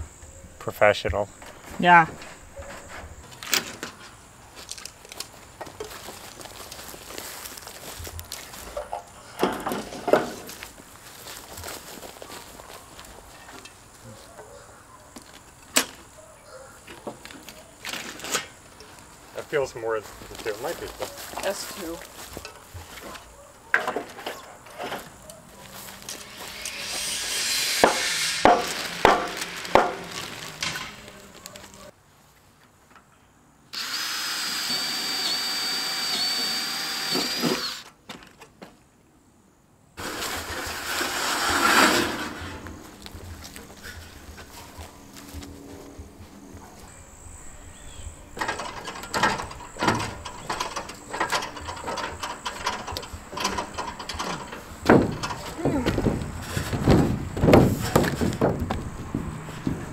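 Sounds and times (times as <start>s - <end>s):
power tool running: 26.1s - 31.0s, 33.7s - 37.9s
metal roofing panels rattling: 28.4s - 31.8s, 48.4s - 58.8s.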